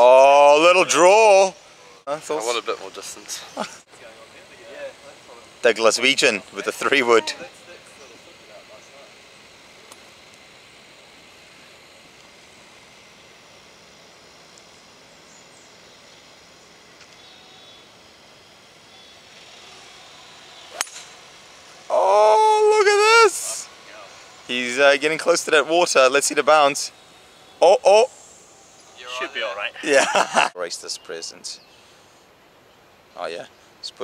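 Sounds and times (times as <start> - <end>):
person calling out loudly: 0.0 - 1.6, 21.9 - 23.7, 27.6 - 28.1
golf club striking ball: 20.7 - 21.2.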